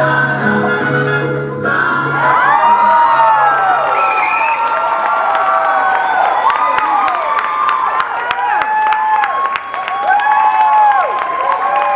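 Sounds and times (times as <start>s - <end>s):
audience cheering and whooping: 2.1s - 11.9s
hands clapping: 4.4s - 11.9s.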